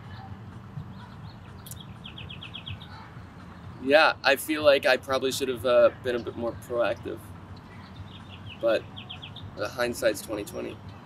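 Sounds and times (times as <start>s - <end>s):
small bird chirping: 0.9s - 3.1s.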